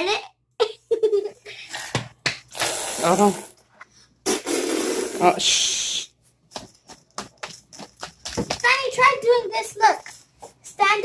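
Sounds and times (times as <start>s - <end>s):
child's voice: 0.0s - 0.4s, 8.6s - 11.0s.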